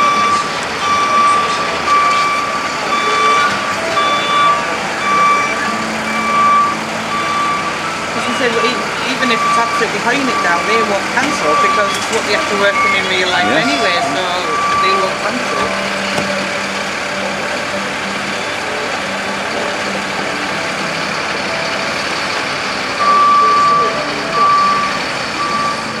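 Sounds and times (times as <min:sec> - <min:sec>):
high electronic beep: 0:00.0 - 0:16.7, 0:23.0 - 0:26.0
fire engine idling: 0:00.0 - 0:26.0.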